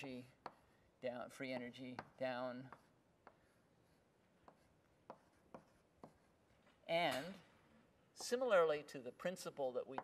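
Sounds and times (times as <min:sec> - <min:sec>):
writing tool tapping on board: 0:00.0 - 0:00.6, 0:01.4 - 0:03.6, 0:04.4 - 0:06.3.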